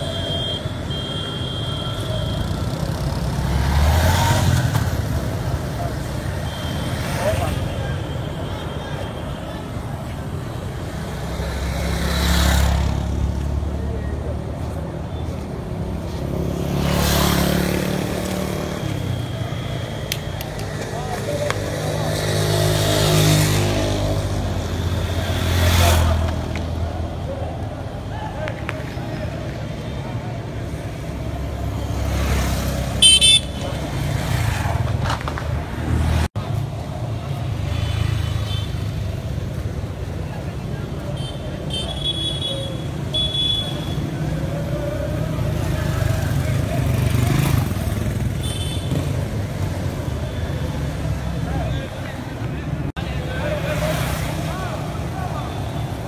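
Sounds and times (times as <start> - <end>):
motorcycle engines passing: 1.7 - 56.0.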